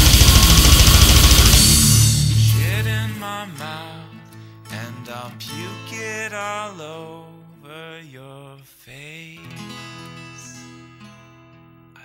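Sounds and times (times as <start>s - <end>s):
fast blast beat drums: 0.0s - 3.2s
distorted guitars: 0.0s - 4.5s.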